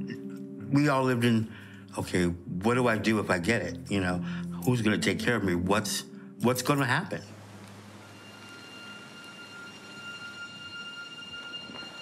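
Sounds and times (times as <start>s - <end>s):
soft hiss: 0.1s - 12.0s
high-pitched ringing tone: 8.0s - 12.0s.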